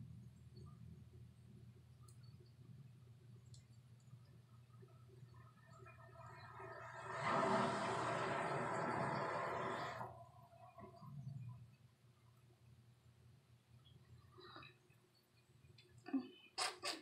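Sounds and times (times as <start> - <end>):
hair dryer blowing: 7.1 - 10.1.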